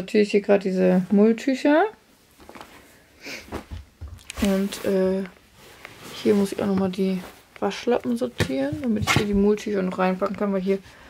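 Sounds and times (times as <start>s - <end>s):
cloth rustling: 2.2s - 11.0s
soft bumps: 3.5s - 5.3s, 6.2s - 10.6s.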